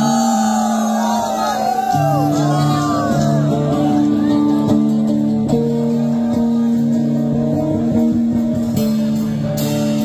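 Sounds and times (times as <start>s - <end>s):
electric guitar: 0.0s - 10.0s
live rock band playing: 0.0s - 10.0s.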